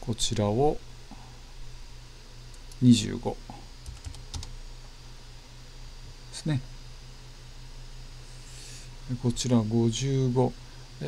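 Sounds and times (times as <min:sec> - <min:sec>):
low steady hum: 0:00.0 - 0:11.0
computer keyboard keystrokes: 0:03.8 - 0:04.5.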